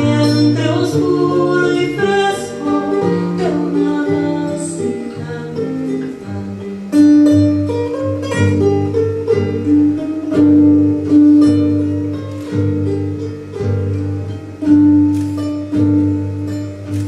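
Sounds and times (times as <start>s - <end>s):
charango and acoustic guitar folk tune: 0.0s - 17.0s.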